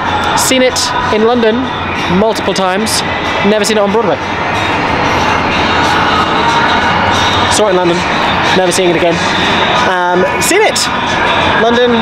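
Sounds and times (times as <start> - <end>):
city street rumble: 0.0 - 12.0.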